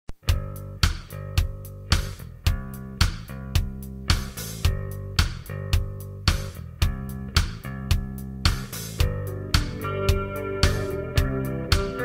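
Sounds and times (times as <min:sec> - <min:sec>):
drum hits: 0:00.1 - 0:12.0
heavy metal band playing: 0:09.0 - 0:12.0.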